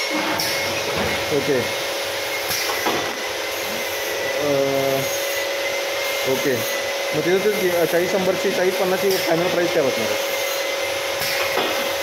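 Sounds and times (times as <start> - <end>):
filling machine hiss and hum: 0.0 - 12.0.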